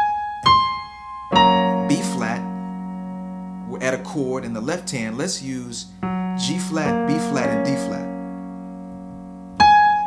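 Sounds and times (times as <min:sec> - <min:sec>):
piano notes and chords: 0:00.0 - 0:10.0.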